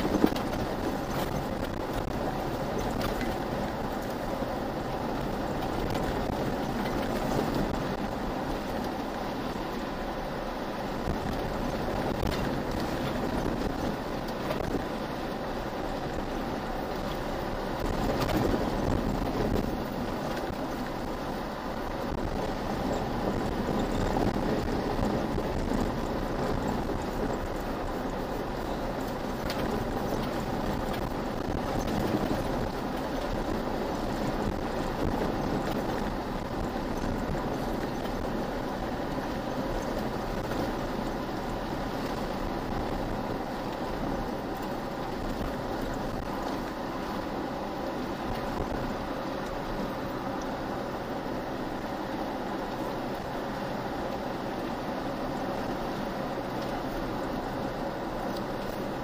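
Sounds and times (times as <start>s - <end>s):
tyres rumbling on gravel: 0.0s - 59.0s
vehicle engine: 0.0s - 59.0s.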